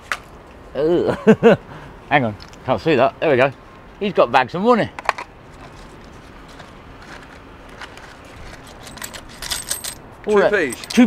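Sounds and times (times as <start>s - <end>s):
coins clinking in metal box: 8.4s - 11.0s.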